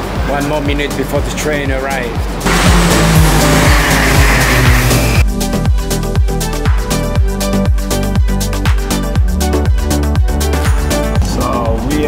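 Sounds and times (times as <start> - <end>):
background music with steady beat: 0.0 - 12.0
train rushing noise: 2.4 - 5.2.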